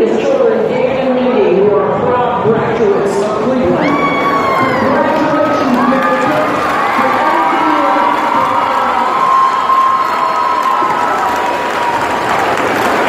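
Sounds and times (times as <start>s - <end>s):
crowd cheering and shouting: 3.6s - 13.0s
long drawn-out yells: 3.8s - 5.0s, 5.8s - 12.8s.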